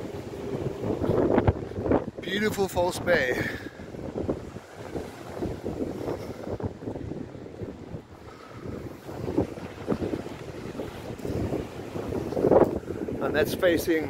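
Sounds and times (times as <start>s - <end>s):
small waves breaking on beach: 0.0s - 14.0s
wind buffeting microphone: 0.0s - 14.0s.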